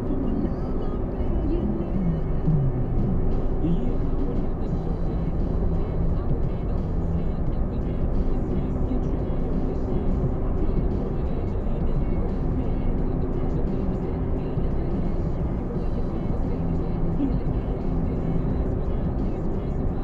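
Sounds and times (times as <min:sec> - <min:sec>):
car engine and tyre rumble: 0:00.0 - 0:20.0.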